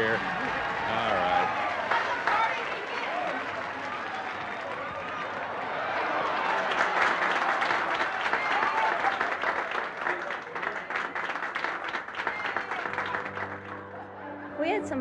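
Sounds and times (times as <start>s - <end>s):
crowd clapping: 0.0s - 14.3s
music: 12.3s - 15.0s.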